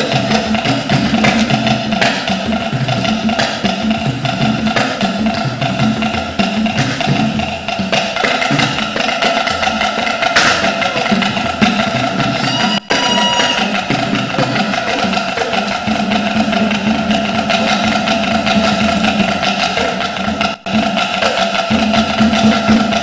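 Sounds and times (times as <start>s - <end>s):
drum and percussion music: 0.0s - 23.0s.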